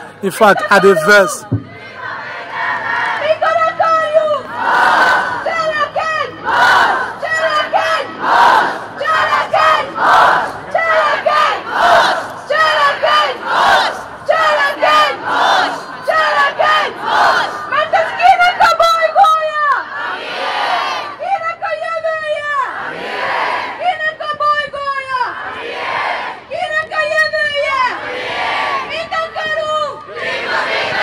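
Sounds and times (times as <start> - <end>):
crowd shouting back: 0.0 - 1.9
amplified voice calling: 0.2 - 1.4.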